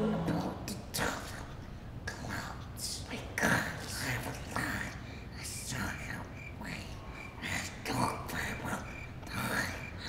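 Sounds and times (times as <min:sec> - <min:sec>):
child whispering softly: 0:00.0 - 0:10.0.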